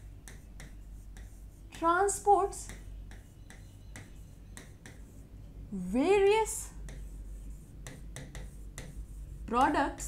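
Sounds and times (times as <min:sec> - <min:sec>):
woman speaking: 0:01.7 - 0:02.8, 0:05.7 - 0:06.8, 0:09.5 - 0:10.0.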